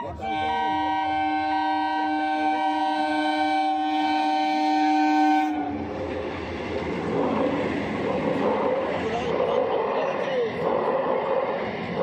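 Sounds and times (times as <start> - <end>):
train coaches rumbling and clattering: 0.0 - 2.7, 4.8 - 12.0
train horn blast: 0.0 - 5.9.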